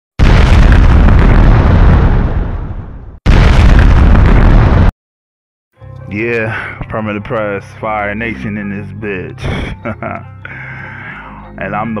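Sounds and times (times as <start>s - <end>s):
loud deep explosion rumble: 0.2s - 4.9s.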